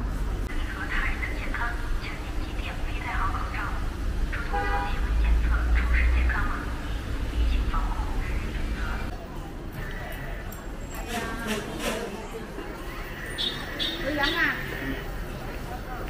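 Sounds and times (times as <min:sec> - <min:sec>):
low rumble of traffic: 0:00.0 - 0:16.0
passers-by talking: 0:00.0 - 0:16.0.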